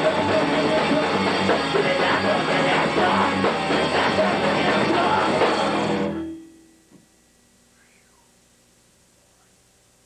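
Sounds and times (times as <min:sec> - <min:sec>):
rock band closing chord: 0:00.0 - 0:07.2
faint steady hum: 0:06.0 - 0:10.0.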